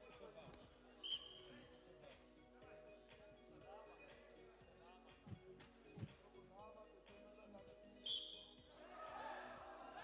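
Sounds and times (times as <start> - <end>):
faint voices in sports hall: 0.0 - 10.0.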